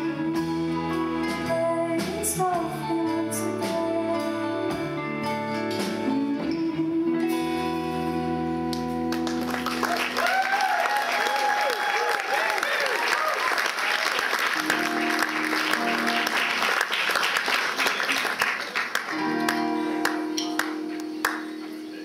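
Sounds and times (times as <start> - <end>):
audience applauding and cheering: 9.1 - 21.6
guitar notes picked: 14.6 - 16.7, 19.1 - 22.0.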